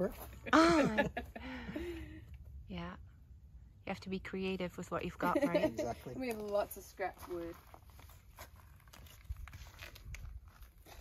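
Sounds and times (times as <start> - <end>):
footsteps on gravel: 5.9 - 11.0.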